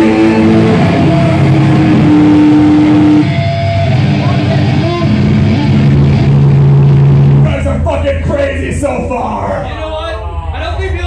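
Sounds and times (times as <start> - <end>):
distorted electric guitars: 0.0 - 9.6
low rumble: 0.0 - 11.0.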